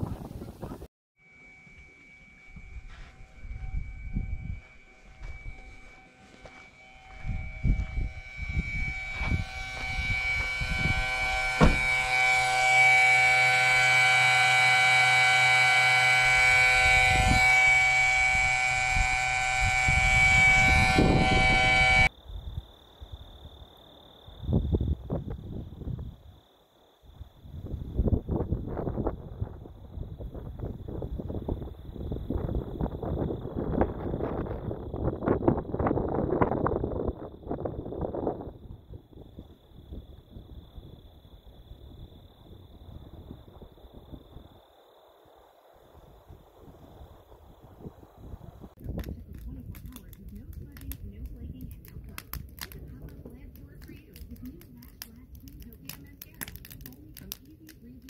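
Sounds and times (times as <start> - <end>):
wind gusts on microphone: 0.0 - 0.9, 2.5 - 13.4, 14.6 - 23.3, 24.3 - 26.3, 27.2 - 44.6, 46.0 - 57.8
air compressor whining: 1.2 - 22.1
faint steady high whine: 1.2 - 58.0.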